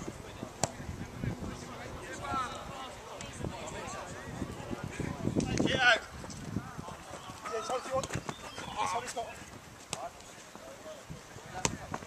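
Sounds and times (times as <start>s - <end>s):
players shouting: 6.6s - 9.2s.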